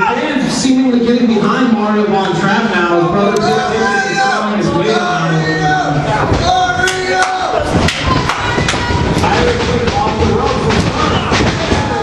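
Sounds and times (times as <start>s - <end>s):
crowd shouting: 2.9s - 12.0s.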